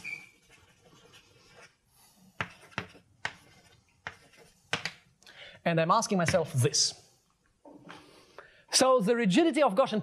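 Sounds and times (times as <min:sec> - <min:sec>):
chalk scratching on blackboard: 0:00.4 - 0:05.0.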